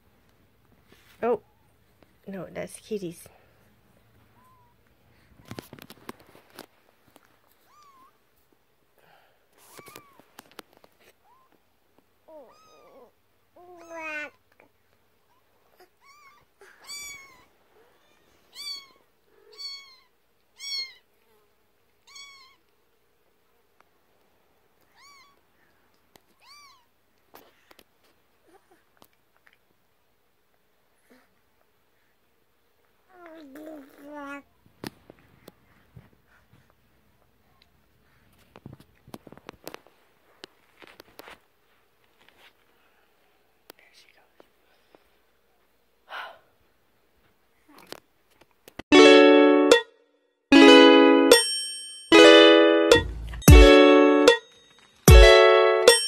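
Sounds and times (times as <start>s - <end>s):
faint taps and rustles: 4.0s - 8.6s, 9.6s - 12.1s, 34.6s - 42.8s
kitten meowing: 12.3s - 13.1s, 16.0s - 21.0s, 22.1s - 22.6s, 24.9s - 25.4s, 26.4s - 26.9s.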